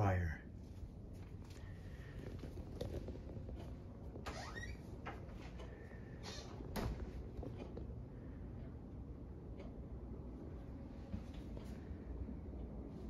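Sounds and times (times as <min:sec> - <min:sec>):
low background hum: 0:00.0 - 0:13.0
soft footsteps: 0:00.5 - 0:08.0, 0:09.7 - 0:13.0.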